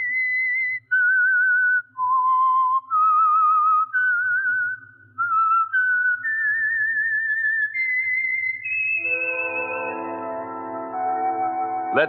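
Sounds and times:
whistled melody with vibrato: 0.0s - 12.0s.

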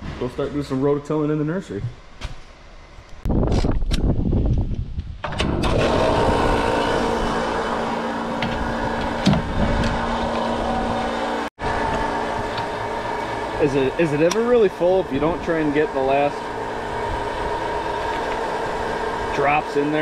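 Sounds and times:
fuel pump humming: 5.3s - 20.0s.

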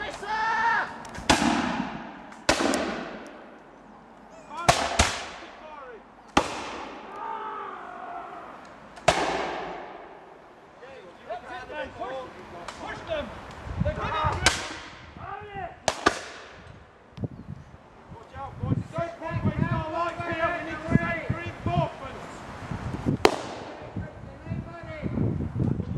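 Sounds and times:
musket shot with echo: 1.2s - 3.6s, 4.7s - 5.6s, 6.3s - 7.1s, 9.0s - 10.2s, 15.8s - 16.6s, 23.2s - 24.0s.

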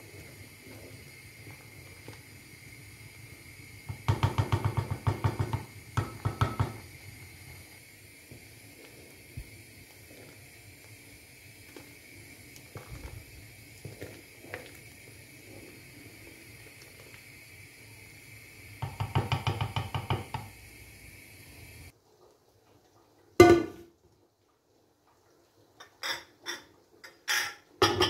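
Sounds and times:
syrup simmering with hiss: 0.0s - 28.0s
wooden spoon knocking: 4.0s - 6.8s, 18.8s - 20.5s.

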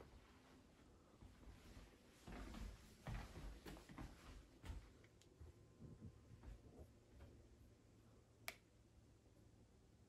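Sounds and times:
faint sharp click: 8.4s - 8.7s.

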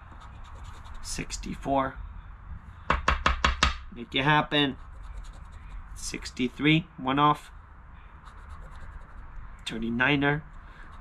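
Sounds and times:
chip scratching lottery ticket: 0.0s - 1.6s, 4.7s - 6.3s.

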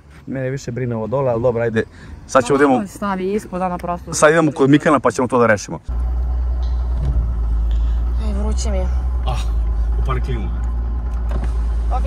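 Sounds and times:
diesel engine rumbling from cabin: 0.0s - 12.0s.

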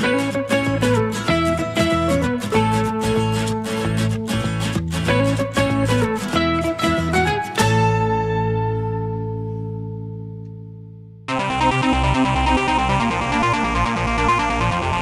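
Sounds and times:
music of plucked notes: 0.0s - 15.0s.

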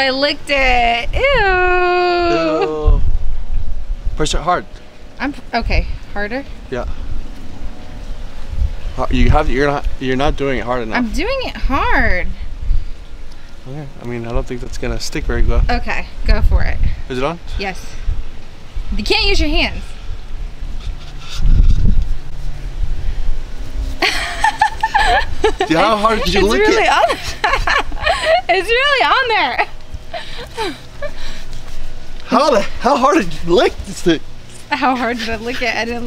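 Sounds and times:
wind buffeting microphone: 0.0s - 36.0s
person giggling: 2.2s - 3.0s, 24.0s - 28.6s
short low rumble: 20.0s - 26.2s.

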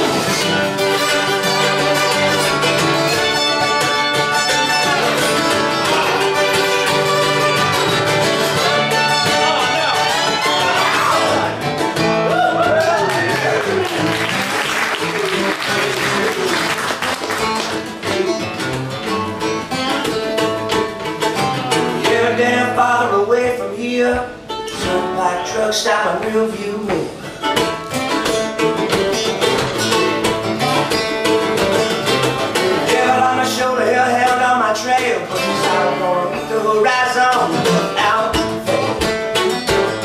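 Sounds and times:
acoustic guitar picked and strummed: 0.0s - 40.0s
country-rock band playing: 0.0s - 40.0s.

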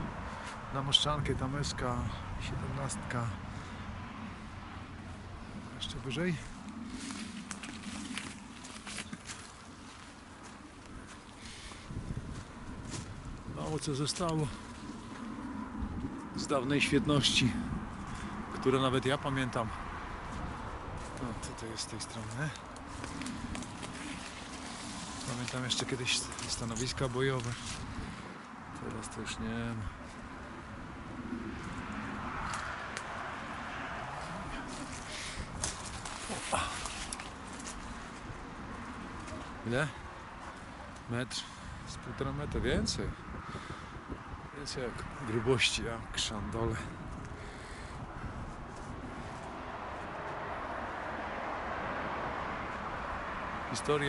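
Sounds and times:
footsteps on dry leaves and twigs: 6.4s - 16.4s, 19.9s - 28.9s, 30.0s - 40.7s
twigs cracking: 6.4s - 16.4s, 19.8s - 29.0s, 30.0s - 41.1s.

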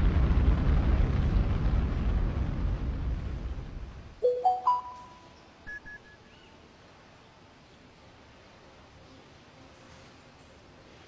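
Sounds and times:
rising three-note chime: 4.2s - 5.3s
high-pitched pips: 4.2s - 5.8s.

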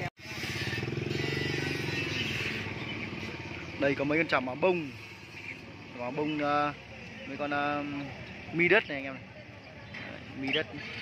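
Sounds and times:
small motorcycle engine running: 0.0s - 11.0s.

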